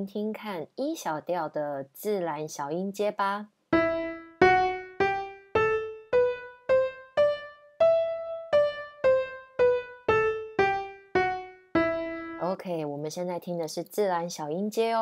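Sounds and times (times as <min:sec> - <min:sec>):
piano playing a scale: 0:03.7 - 0:12.5.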